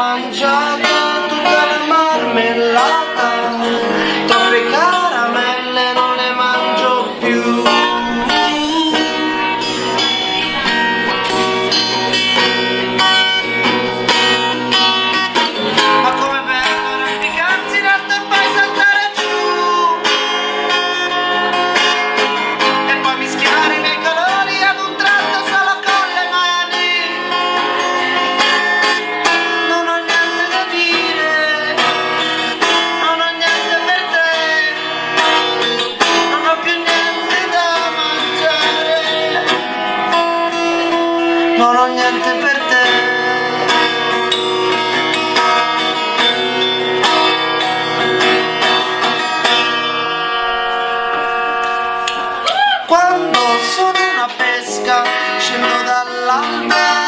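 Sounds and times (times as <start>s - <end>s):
man singing: 0.0s - 49.4s, 52.6s - 57.0s
strummed guitar: 0.0s - 57.0s.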